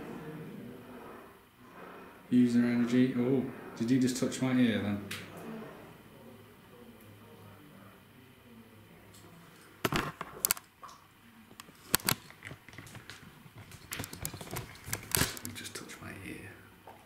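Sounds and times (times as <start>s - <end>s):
camera handling noise: 11.6s - 13.2s.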